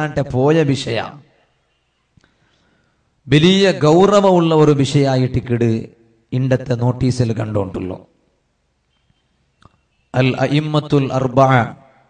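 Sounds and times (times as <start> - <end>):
man speaking: 0.0 - 1.3, 3.3 - 8.1, 10.1 - 11.9.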